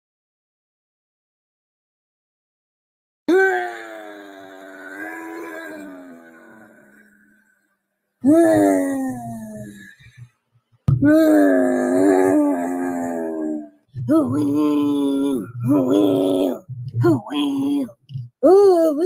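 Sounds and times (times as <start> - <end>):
woman wailing: 3.3 - 6.8.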